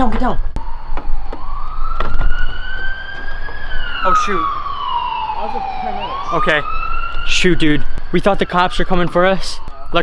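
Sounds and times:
emergency siren wailing: 0.6s - 10.0s.

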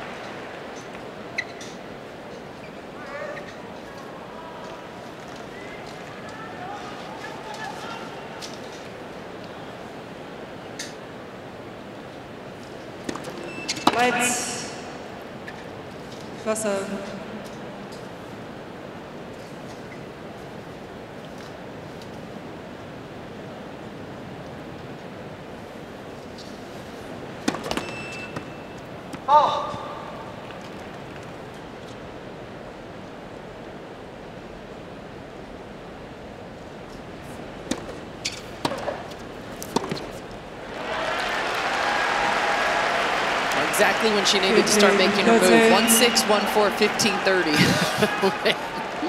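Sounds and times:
tennis ball strikes: 38.6s - 40.2s
crowd applause: 40.6s - 49.0s
crowd murmur: 40.7s - 49.0s.

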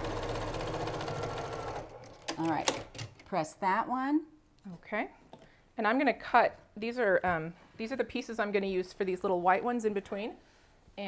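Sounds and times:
sewing machine stitching: 0.0s - 3.1s.

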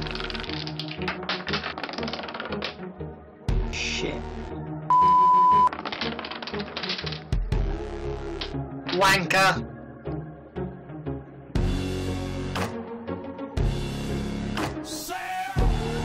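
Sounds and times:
wooden blocks clattering: 0.0s - 2.8s, 5.7s - 7.4s
music: 0.0s - 16.0s
loud steady beep: 4.9s - 5.7s.

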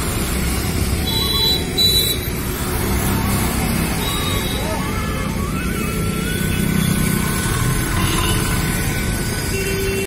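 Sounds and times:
cars driving past: 0.0s - 9.7s.

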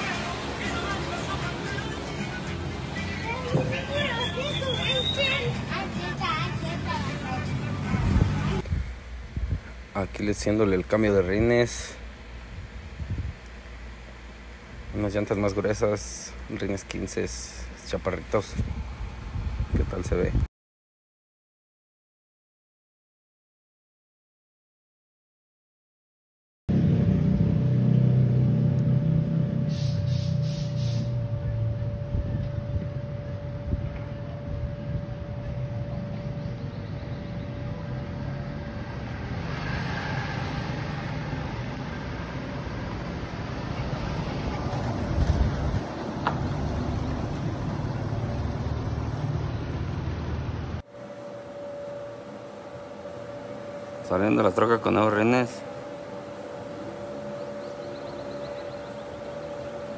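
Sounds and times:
street background: 0.0s - 20.5s, 26.7s - 59.9s.

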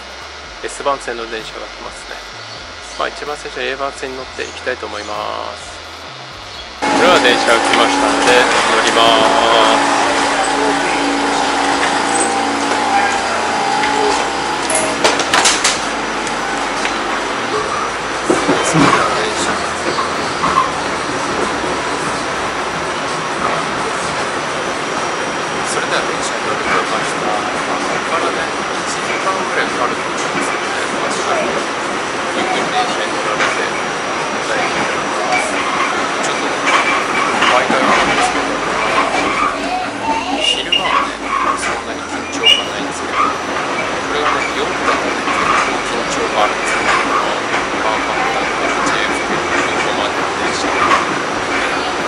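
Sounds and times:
subway train wheels rumbling: 0.0s - 52.0s.

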